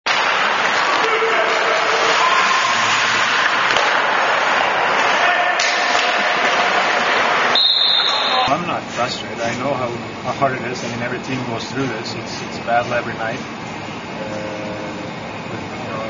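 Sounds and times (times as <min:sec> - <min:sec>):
sticks and puck clacking: 0:00.1 - 0:07.5
players' voices: 0:00.7 - 0:13.5, 0:14.1 - 0:16.0.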